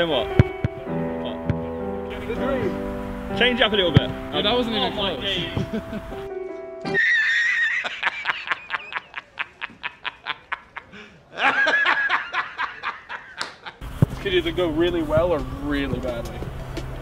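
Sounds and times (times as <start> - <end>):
high-pitched laughter: 6.9 - 13.8.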